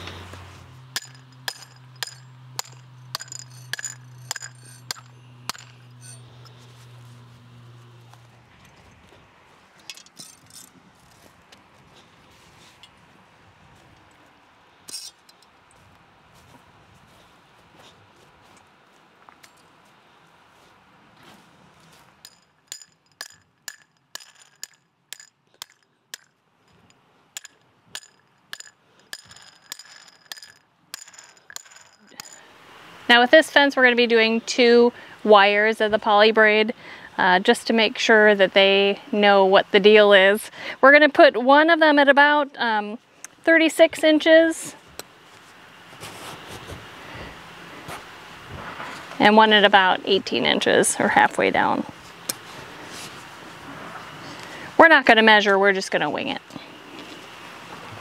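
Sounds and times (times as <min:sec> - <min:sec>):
low steady hum: 0:00.0 - 0:58.0
hammer striking fence post: 0:00.7 - 0:07.7, 0:22.2 - 0:26.3, 0:27.4 - 0:32.4.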